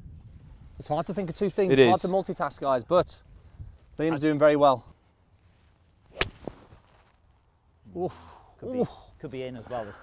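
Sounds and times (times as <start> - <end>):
club striking golf ball: 6.1 - 6.6
golf club swish: 6.1 - 6.8.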